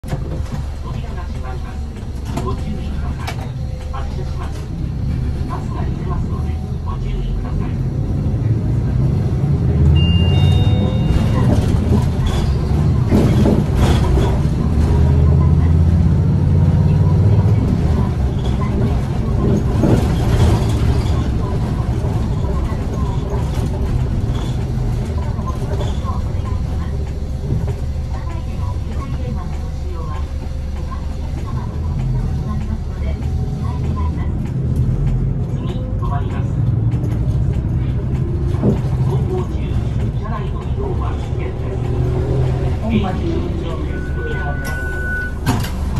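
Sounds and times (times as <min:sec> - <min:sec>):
bus engine and road noise: 0:00.0 - 0:45.9.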